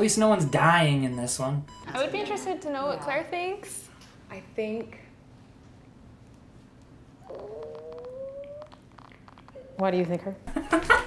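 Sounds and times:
cat meowing: 7.2s - 8.8s.

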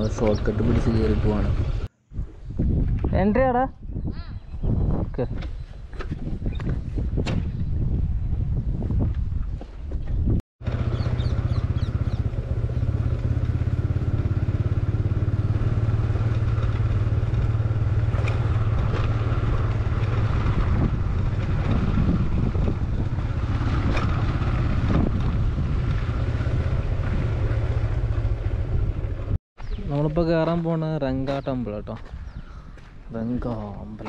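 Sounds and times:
motorcycle engine running: 0.0s - 1.9s, 10.2s - 30.6s.

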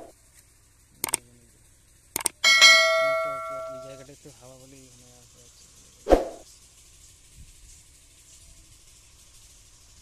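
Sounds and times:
quick clicks: 1.0s - 1.2s, 2.2s - 2.4s
metal bell ringing: 2.4s - 4.1s.

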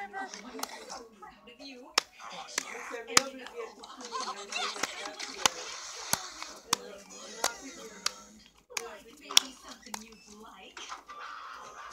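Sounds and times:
cartoon voices from screen: 0.0s - 10.0s
sharp clicks: 8.0s - 10.5s.

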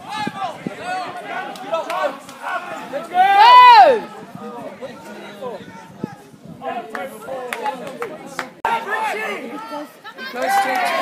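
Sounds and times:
spectators talking and calling out: 0.0s - 11.0s.

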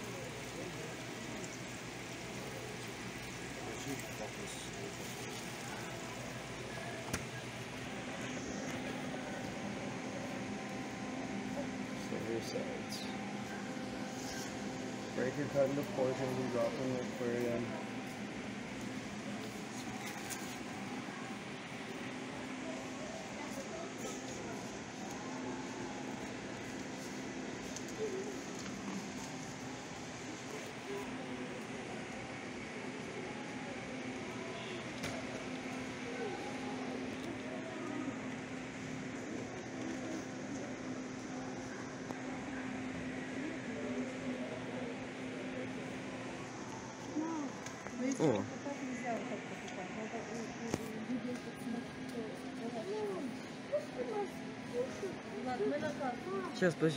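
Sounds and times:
distant indistinct voices: 0.0s - 56.9s
steady low hum: 0.0s - 56.9s.

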